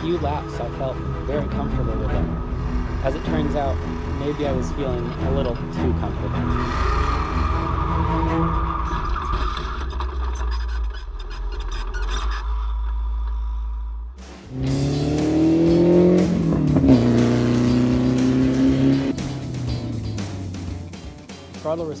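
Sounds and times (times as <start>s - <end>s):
race car engine revving: 0.0s - 10.7s, 14.2s - 20.8s.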